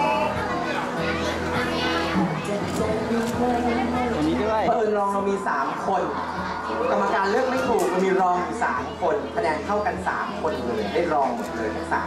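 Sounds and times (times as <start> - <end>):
children chattering: 0.0 - 12.0
hubbub of voices: 0.0 - 12.0.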